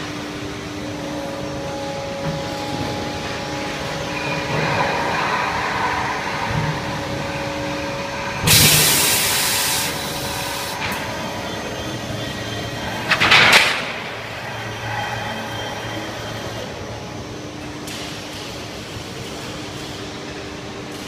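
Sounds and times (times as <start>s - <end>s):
machine hum with held tones: 0.0s - 21.0s
compressed air hiss: 8.5s - 10.8s.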